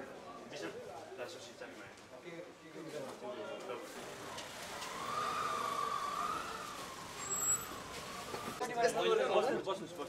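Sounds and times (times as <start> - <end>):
siren wailing: 4.4 - 8.6.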